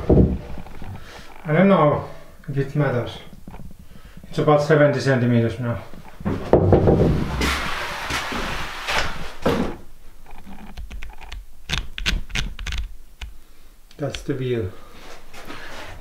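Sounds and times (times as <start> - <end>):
footsteps on wooden floorboards: 0.0 - 0.8, 6.2 - 7.7
rustling: 5.7 - 13.6
sharp knocks and clicks: 10.3 - 13.4.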